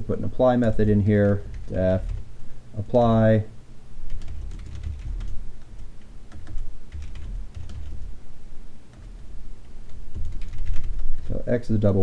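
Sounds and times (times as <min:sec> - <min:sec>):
computer keyboard typing: 0:00.6 - 0:02.3, 0:04.1 - 0:08.1, 0:08.9 - 0:11.4.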